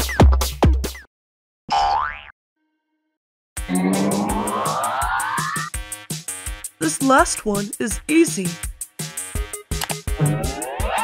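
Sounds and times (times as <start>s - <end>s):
cartoon boing sound effect: 3.7s - 4.7s.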